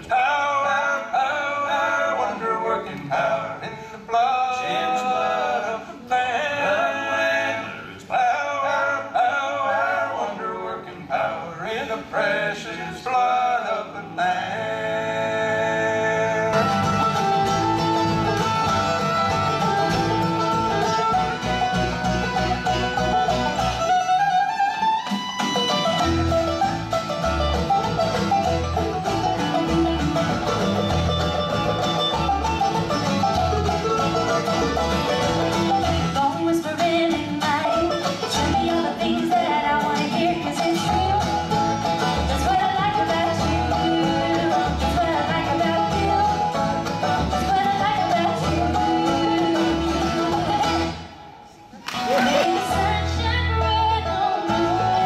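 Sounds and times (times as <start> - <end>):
people singing: 0.0 - 16.9, 36.0 - 51.0, 52.0 - 55.0
acoustic guitar and mandolin: 0.0 - 55.0
bluegrass band playing: 0.0 - 55.0.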